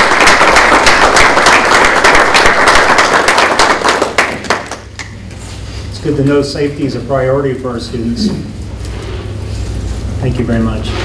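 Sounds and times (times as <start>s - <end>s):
people applauding: 0.0s - 5.2s.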